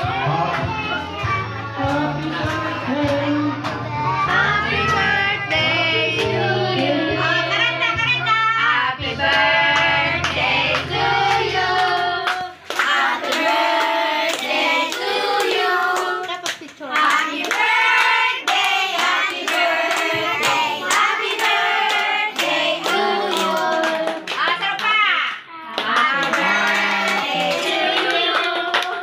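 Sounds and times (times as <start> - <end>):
people singing a celebration song: 0.0 - 24.4, 25.7 - 29.0.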